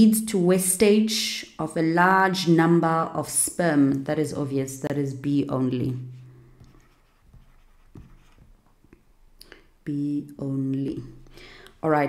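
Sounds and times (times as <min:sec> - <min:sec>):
stylus tapping and scratching on screen: 0:05.9 - 0:09.2.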